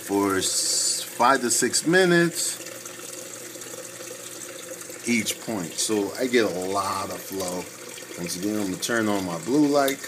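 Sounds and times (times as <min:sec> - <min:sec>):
aquarium water rushing: 0:00.0 - 0:10.0.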